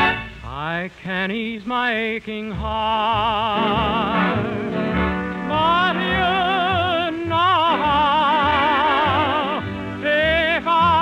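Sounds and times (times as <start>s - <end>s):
orchestral ballad on old radio: 0.0s - 11.0s.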